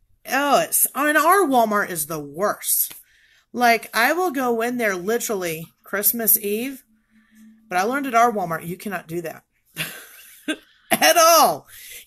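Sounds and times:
woman breathing: 0:03.0 - 0:03.6, 0:06.9 - 0:07.6, 0:10.6 - 0:10.9, 0:11.7 - 0:12.0
woman's cough-like vocal sound: 0:10.9 - 0:11.3.

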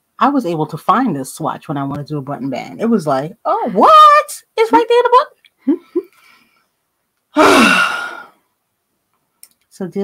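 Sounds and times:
woman sighing: 0:07.4 - 0:08.4.

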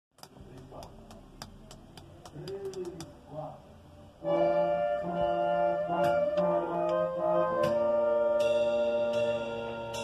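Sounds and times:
low murmuring voices: 0:00.3 - 0:09.8.

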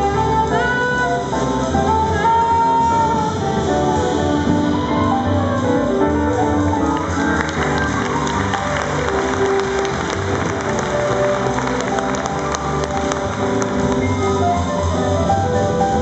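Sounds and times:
jazz ensemble playing: 0:00.0 - 0:16.0
piano: 0:00.0 - 0:16.0.

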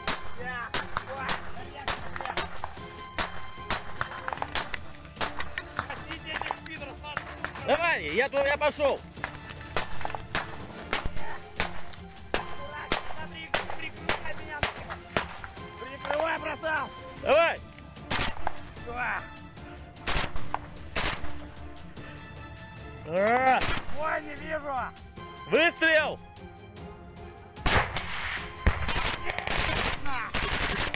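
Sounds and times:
small-arms gunfire: 0:00.0 - 0:06.0, 0:09.8 - 0:15.5, 0:18.1 - 0:18.6, 0:20.1 - 0:21.4, 0:23.6 - 0:24.0, 0:27.6 - 0:30.9.

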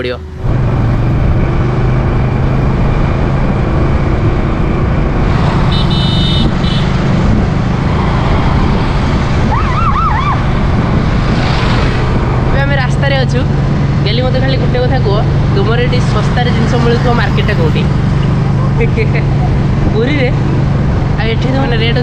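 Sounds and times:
motorcycle engine hum: 0:00.0 - 0:22.0
wind and road noise: 0:00.0 - 0:22.0.

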